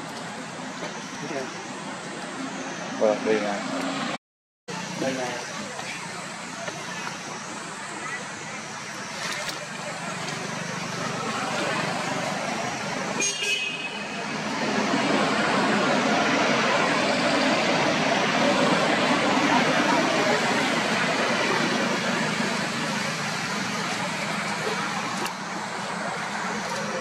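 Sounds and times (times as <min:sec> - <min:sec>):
outdoor background noise: 0:00.0 - 0:27.0.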